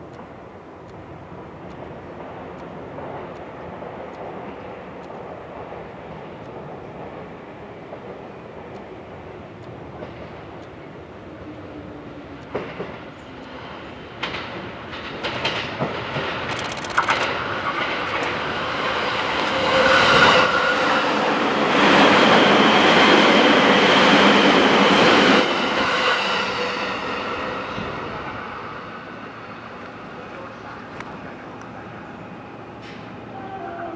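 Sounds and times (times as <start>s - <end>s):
train rumble with held tones: 0.0s - 33.9s
wheels clicking over rail joints: 14.2s - 20.1s.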